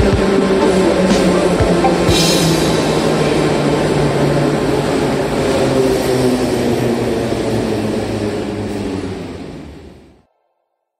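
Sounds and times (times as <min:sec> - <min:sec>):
metro train rumbling: 0:00.0 - 0:10.3.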